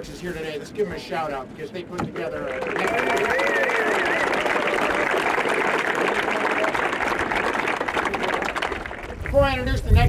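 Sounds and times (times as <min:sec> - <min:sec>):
crowd applauding: 0:02.3 - 0:09.5.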